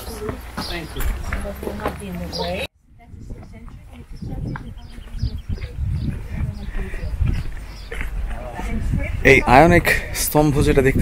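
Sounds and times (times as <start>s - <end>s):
faint tourist chatter: 0.0s - 11.0s.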